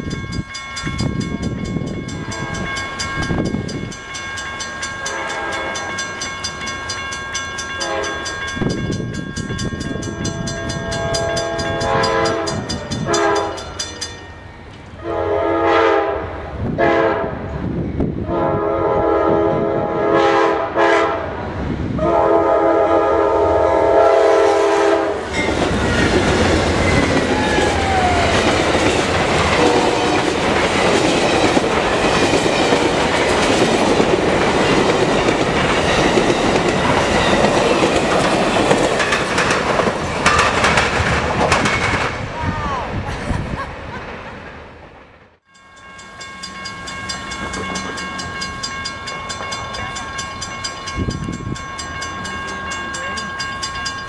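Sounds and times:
train cars rumbling and clattering: 0.0s - 54.0s
train horn blasts: 2.2s - 2.8s, 5.1s - 6.0s, 7.8s - 8.2s, 9.9s - 13.7s, 15.0s - 17.5s, 18.2s - 21.4s, 22.0s - 25.3s, 29.4s - 30.4s.

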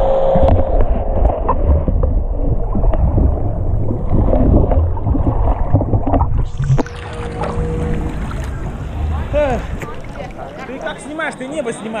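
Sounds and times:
seawater sloshing and lapping: 1.2s - 12.0s
voices: 6.8s - 12.0s.

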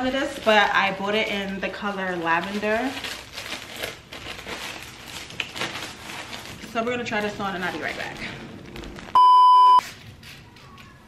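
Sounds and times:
electronic beep: 9.2s - 9.8s.

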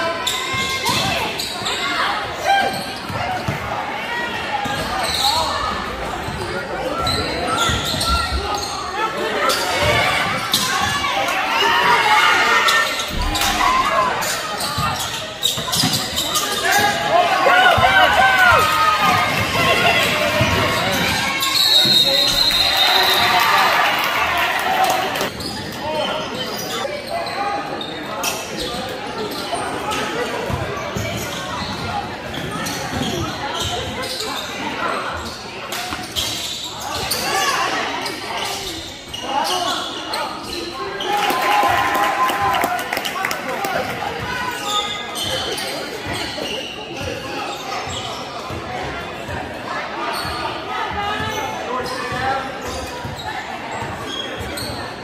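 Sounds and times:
voices shouting and calling: 0.0s - 28.4s.

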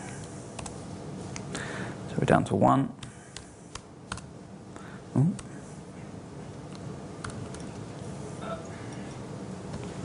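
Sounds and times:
computer keystrokes: 3.7s - 4.3s, 6.7s - 7.8s.

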